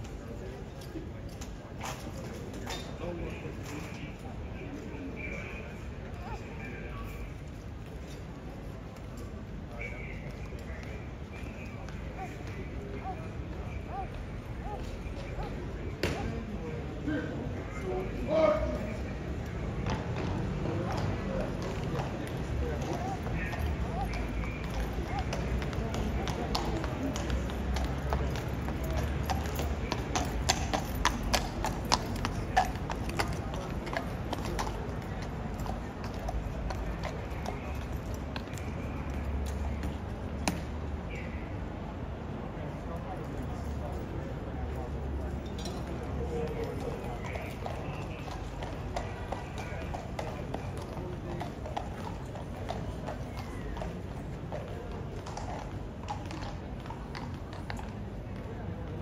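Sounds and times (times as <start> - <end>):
horse hooves clip-clopping on stone: 0.0 - 4.9, 10.2 - 17.0, 18.8 - 40.7, 44.8 - 59.0
crowd chatter: 0.0 - 59.0.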